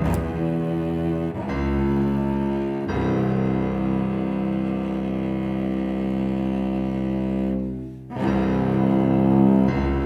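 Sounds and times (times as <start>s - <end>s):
cello long bowed note: 0.0s - 10.0s.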